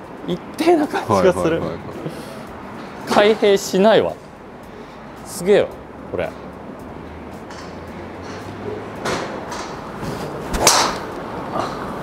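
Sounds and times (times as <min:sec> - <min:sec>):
golf driver striking ball: 0:10.5 - 0:11.1.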